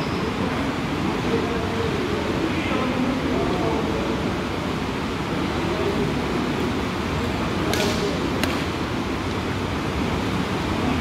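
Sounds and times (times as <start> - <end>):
murmur of voices: 0.0 - 9.0
steady rushing noise: 0.4 - 11.0
short sharp snaps: 7.7 - 8.7.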